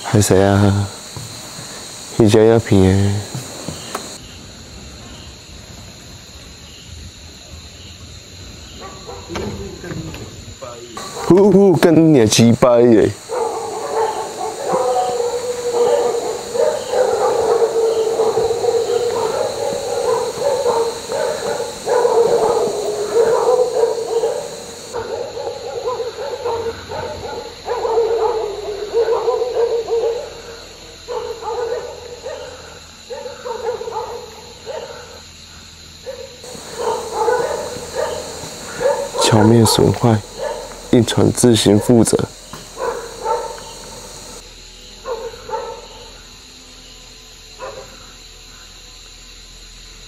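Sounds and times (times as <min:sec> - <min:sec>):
dogs howling and whining: 0:11.0 - 0:11.6, 0:12.7 - 0:30.5, 0:36.1 - 0:41.0, 0:41.6 - 0:44.4
high-pitched drone: 0:12.0 - 0:25.0.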